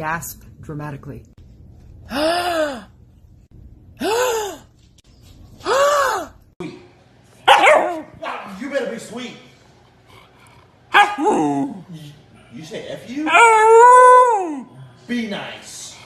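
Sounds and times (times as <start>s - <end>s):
dog howling and yowling: 13.2s - 14.7s.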